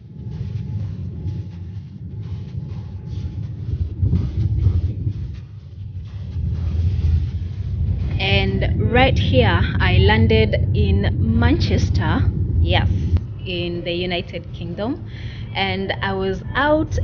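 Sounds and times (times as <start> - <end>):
deep rumble of wheels and engines: 0.0 - 17.0.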